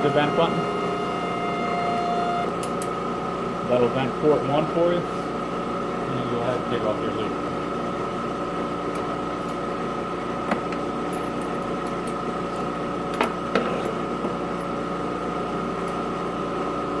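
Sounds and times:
leak detector pump hum: 0.0s - 2.9s.

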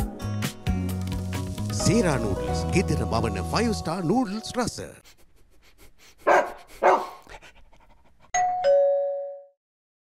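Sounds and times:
dog barking: 6.2s - 7.2s
two-note doorbell chime: 8.4s - 9.6s.

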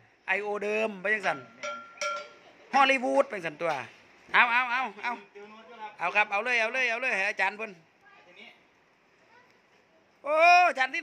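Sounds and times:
drumstick tapping metal pings: 1.2s - 2.5s.

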